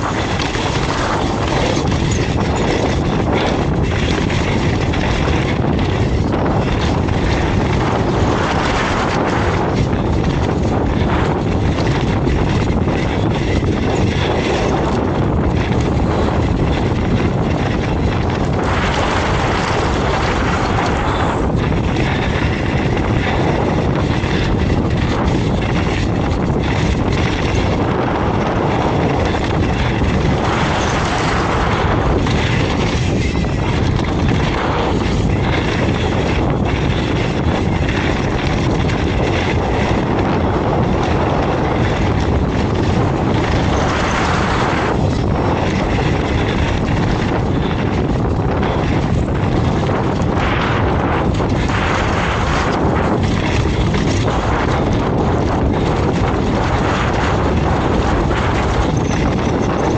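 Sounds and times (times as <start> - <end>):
bike rattling over bumps: 0.0 - 59.9
tyres rolling on dirt: 0.0 - 59.9
wind rushing over microphone: 0.0 - 59.9.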